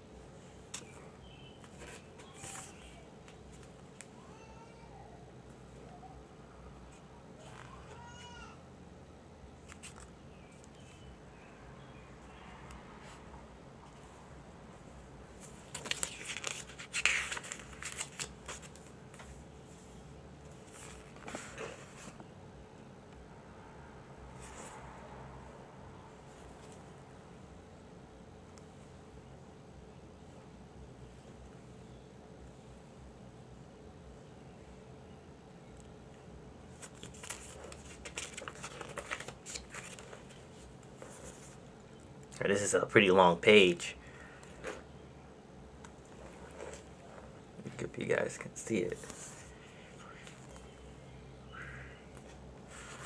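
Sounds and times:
paper pages rustling: 0.7s - 4.1s, 9.6s - 11.0s, 15.4s - 19.4s, 20.5s - 22.2s, 36.7s - 41.7s, 45.8s - 47.8s, 52.2s - 53.0s.

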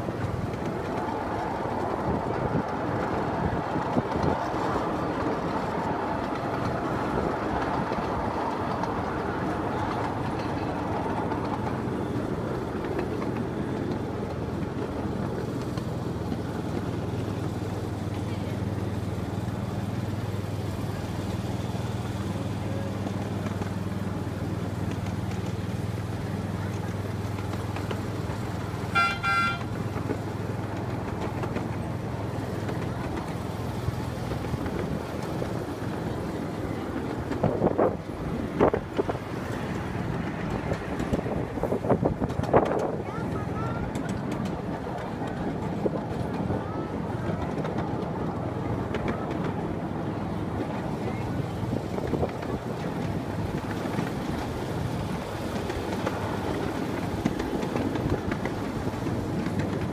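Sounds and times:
miniature train rolling: 0.0s - 59.9s
train horn toot: 28.9s - 29.8s.

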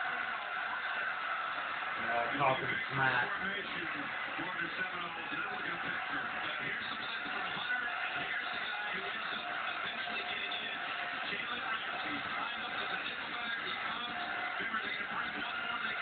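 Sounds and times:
music from television speaker: 0.0s - 16.0s
stadium crowd noise: 0.0s - 16.0s.

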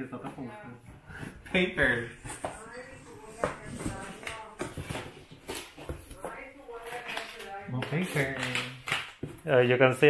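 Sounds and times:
packing paper rustling and crinkling: 2.6s - 9.4s.

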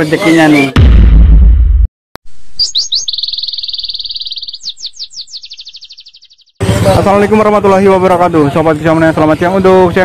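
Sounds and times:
deep rumbling thud: 0.8s - 1.9s
songbird chirping and trilling: 2.5s - 6.6s.

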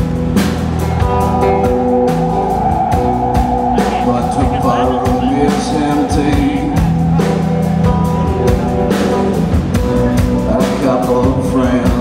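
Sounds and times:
drum kit beat: 0.0s - 12.0s
electric guitar: 0.0s - 12.0s
keyboard playing: 0.0s - 12.0s.

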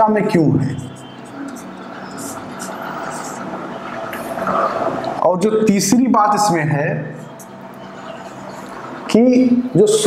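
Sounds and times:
steady background hum: 0.0s - 10.0s
marker pen writing on whiteboard: 0.7s - 5.1s.

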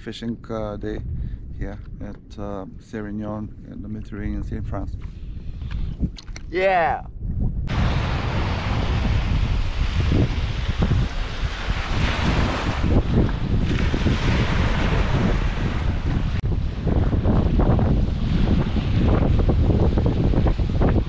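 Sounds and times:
wind buffeting microphone: 0.0s - 21.0s
small waves breaking on beach: 7.7s - 16.8s.

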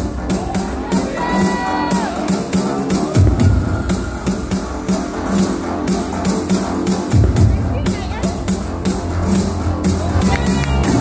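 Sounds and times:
club music with steady drum beat: 0.0s - 11.0s.

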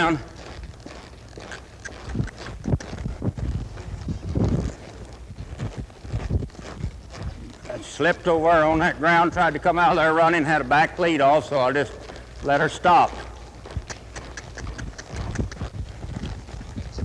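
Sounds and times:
hoofbeats in loose dirt: 0.0s - 17.0s.

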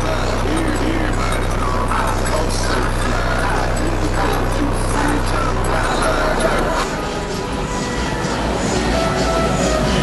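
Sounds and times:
bass-heavy music from car subwoofers: 0.0s - 10.0s
crowd chatter: 0.0s - 10.0s.

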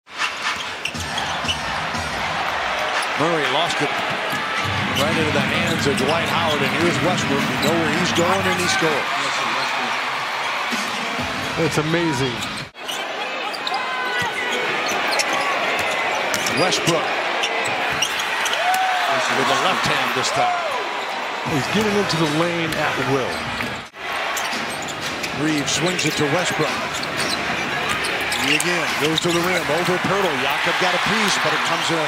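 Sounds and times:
arena crowd noise: 0.1s - 32.0s
sneaker squeaks: 0.2s - 1.7s, 12.4s - 18.6s, 24.3s - 29.7s.

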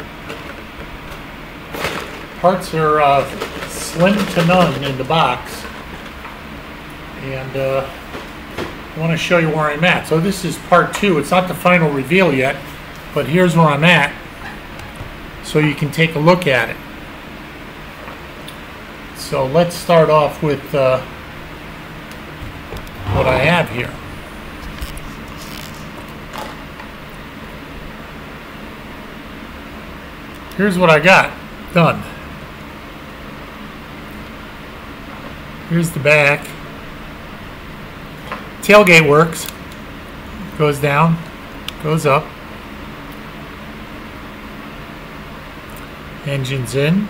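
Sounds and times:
air conditioner hum: 0.0s - 47.0s
ventilation hiss: 0.0s - 47.0s
low hum: 22.4s - 26.1s.

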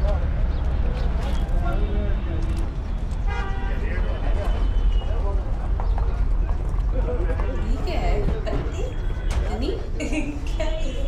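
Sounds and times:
low street rumble: 0.0s - 11.0s
vehicle horn toot: 3.2s - 5.2s.

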